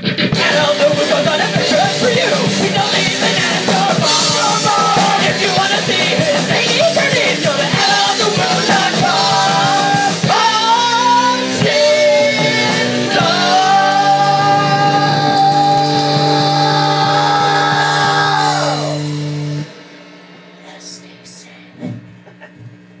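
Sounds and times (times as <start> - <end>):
electric guitar: 0.0 - 20.5
drum kit: 0.0 - 23.0
person shouting lead vocal: 0.4 - 19.1.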